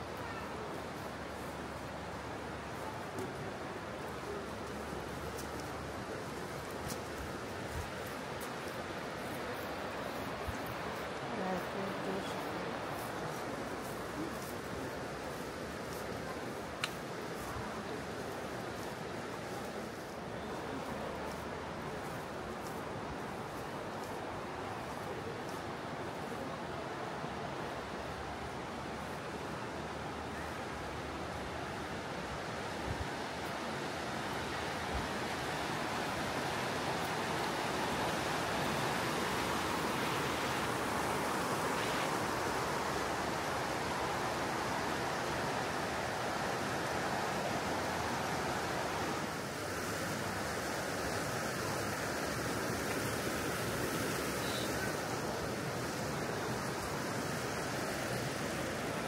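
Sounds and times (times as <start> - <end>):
river water rushing over weir: 0.0 - 59.0.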